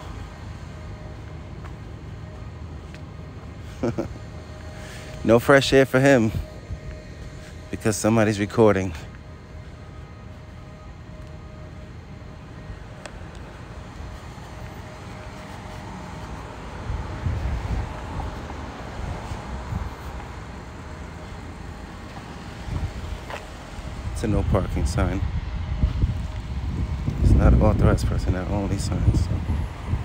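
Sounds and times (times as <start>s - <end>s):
vehicle traffic rumble: 0.0s - 30.0s.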